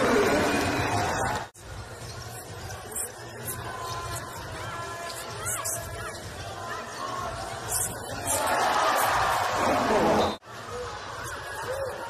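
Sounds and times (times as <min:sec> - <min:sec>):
basketball arena noise: 0:00.0 - 0:12.0.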